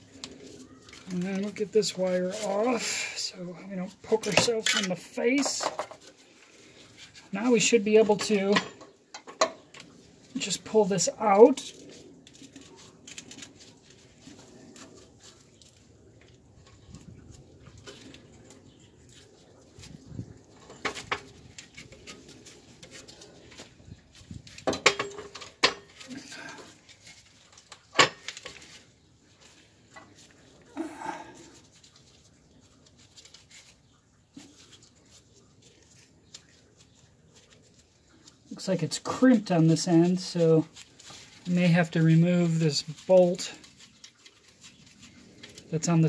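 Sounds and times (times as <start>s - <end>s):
metal clinks and knocks: 24.6s - 26.0s.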